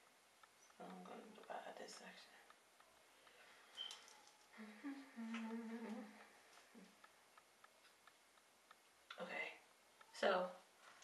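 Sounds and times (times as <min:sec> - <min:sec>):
faint light clicks: 0:00.0 - 0:04.6, 0:05.3 - 0:11.0
woman humming softly: 0:04.5 - 0:07.0.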